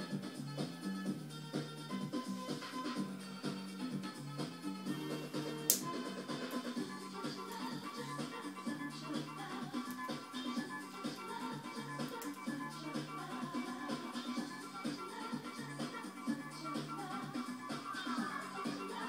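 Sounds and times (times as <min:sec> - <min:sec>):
music with bass line from television: 0:00.0 - 0:19.0.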